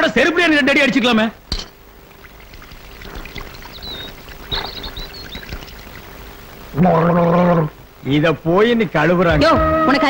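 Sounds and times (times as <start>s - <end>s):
water pouring and splashing: 2.0s - 6.8s.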